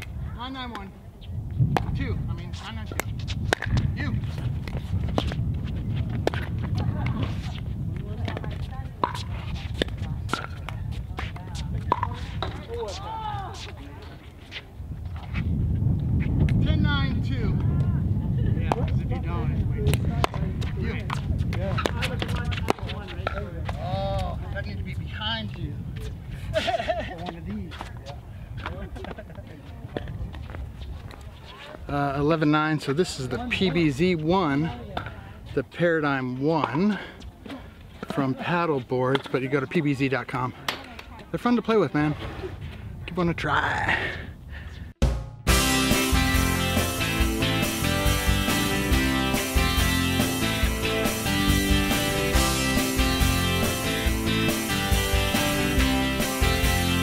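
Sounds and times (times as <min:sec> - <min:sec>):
wind rumble on microphone: 0:00.0 - 0:32.3, 0:42.0 - 0:45.0.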